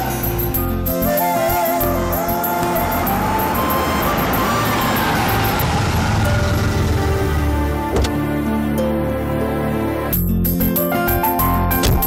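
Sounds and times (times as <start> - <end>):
background music: 0.0 - 12.0
car driving: 1.7 - 10.0.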